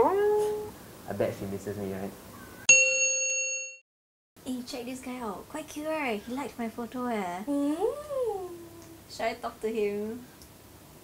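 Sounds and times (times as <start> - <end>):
bright bell ding: 2.7 - 3.8.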